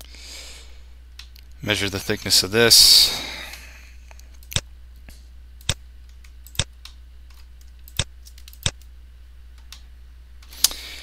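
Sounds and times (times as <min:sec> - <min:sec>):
low steady hum: 0:00.0 - 0:11.0
computer mouse clicking: 0:05.6 - 0:08.9.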